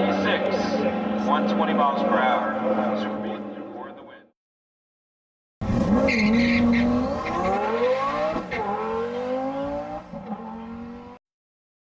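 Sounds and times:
car engine accelerating hard: 0:05.6 - 0:11.2.

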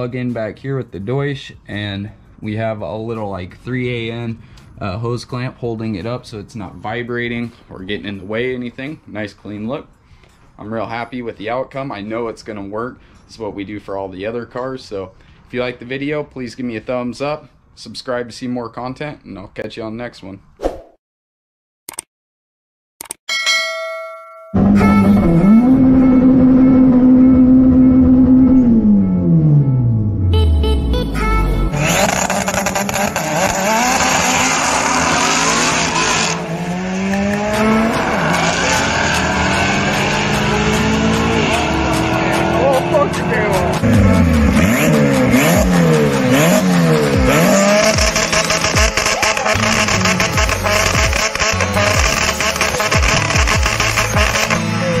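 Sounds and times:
background music: 0:00.0 - 0:14.4, 0:24.6 - 0:55.0
race car engines revving: 0:24.6 - 0:29.4, 0:31.7 - 0:55.0.

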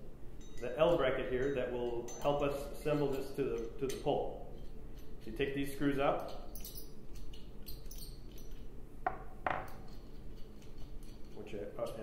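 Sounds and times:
metal parts and screws clinking: 0:00.4 - 0:08.8, 0:09.4 - 0:12.0.

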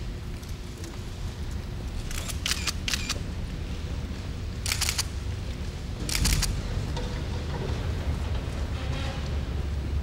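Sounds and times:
camera shutter clicks: 0:02.1 - 0:03.2, 0:04.6 - 0:05.1, 0:06.1 - 0:06.5.

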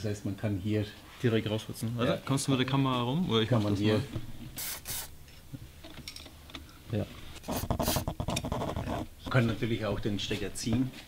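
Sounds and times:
aerosol spray hissing: 0:04.6 - 0:05.1.

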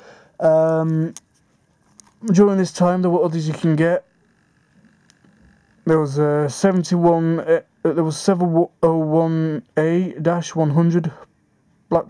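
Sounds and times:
faint high-pitched whine: 0:00.0 - 0:12.0
man's voice: 0:05.9 - 0:11.3.

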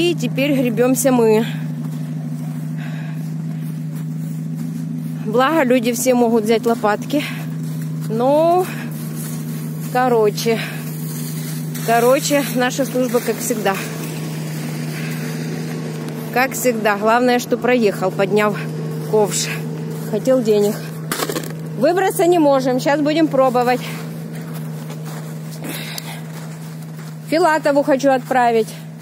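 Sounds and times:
minibus engine idling: 0:00.0 - 0:29.0.

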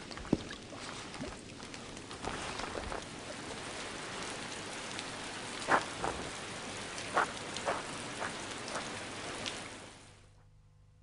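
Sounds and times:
steady rain falling: 0:00.0 - 0:10.4.

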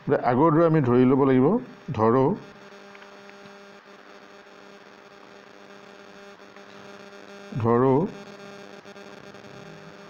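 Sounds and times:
faint steady hum with tones: 0:00.0 - 0:10.0.

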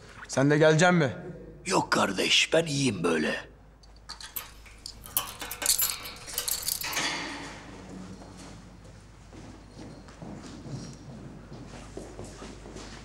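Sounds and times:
metal clinking and rattling: 0:03.9 - 0:08.5.

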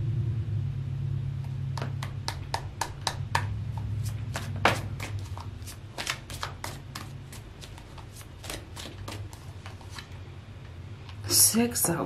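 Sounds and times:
steady low hum: 0:00.0 - 0:12.0
cards being shuffled: 0:01.8 - 0:10.2.

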